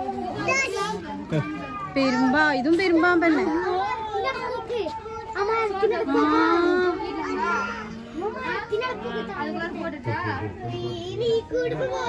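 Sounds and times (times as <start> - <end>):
child talking: 0.4 - 2.4, 3.3 - 9.8, 10.6 - 12.0.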